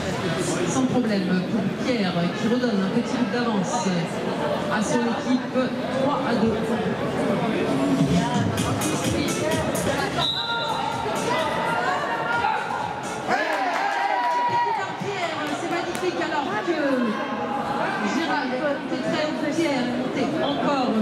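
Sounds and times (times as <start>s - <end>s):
voices chattering in echoing arena: 0.0s - 21.0s
background music: 7.7s - 15.8s.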